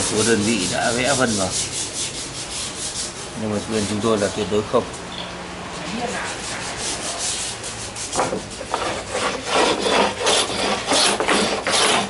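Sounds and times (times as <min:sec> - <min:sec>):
wood being sanded by hand: 0:00.0 - 0:04.4, 0:05.8 - 0:12.0.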